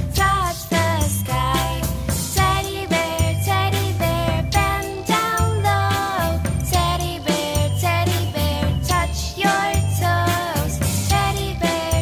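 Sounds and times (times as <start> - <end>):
instrumental children's music: 0.0 - 12.0.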